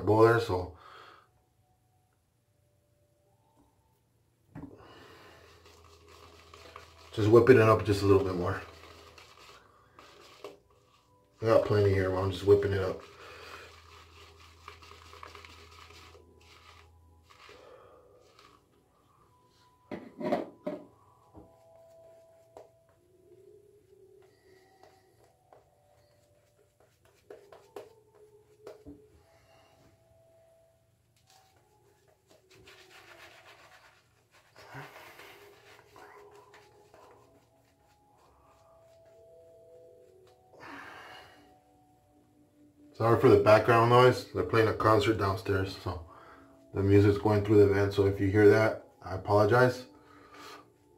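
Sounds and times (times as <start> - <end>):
faint music: 0.0 - 50.9
shaving brush swishing lather: 5.3 - 17.6, 18.2 - 18.7, 31.2 - 40.3.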